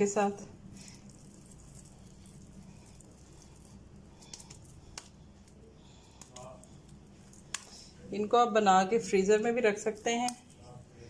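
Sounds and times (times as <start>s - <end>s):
hands squishing and patting mixture: 0.0s - 8.1s, 9.8s - 10.7s
low steady hum: 0.0s - 11.0s.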